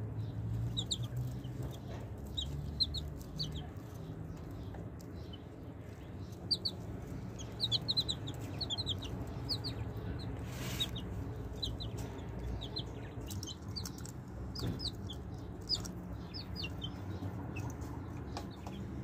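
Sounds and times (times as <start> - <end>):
baby chicks peeping: 0.0 - 19.0
low background rumble: 0.0 - 19.0.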